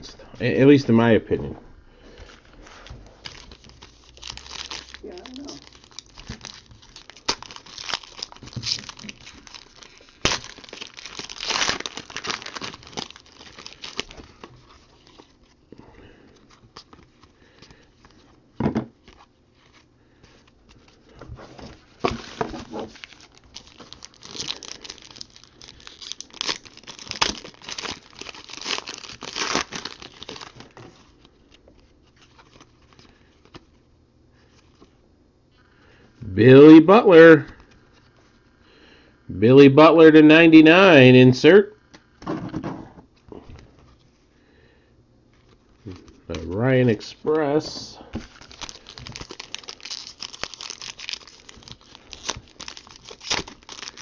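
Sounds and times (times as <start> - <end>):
cards rustling and shuffling: 2.2 - 15.6, 19.0 - 33.8, 45.3 - 47.1, 48.1 - 54.0
foil wrapper tearing and crinkling: 3.2 - 15.6, 21.9 - 31.2, 48.2 - 54.0.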